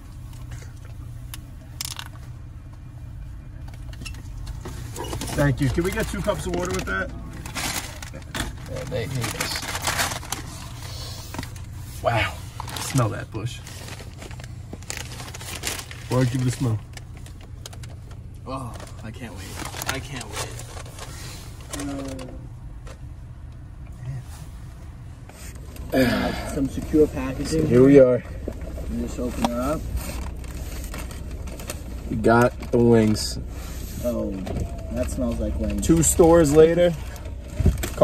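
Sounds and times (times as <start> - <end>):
paper bag rustling: 4.3 - 22.5.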